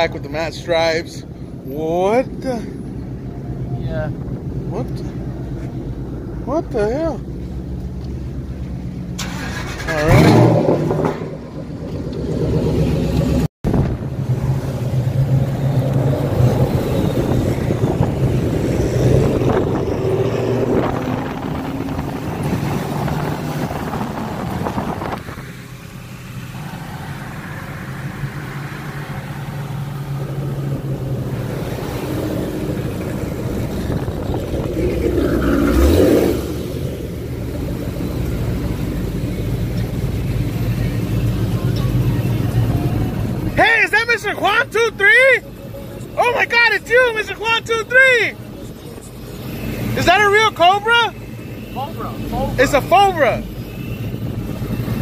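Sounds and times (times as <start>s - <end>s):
car engine running and revving: 0.0s - 55.0s.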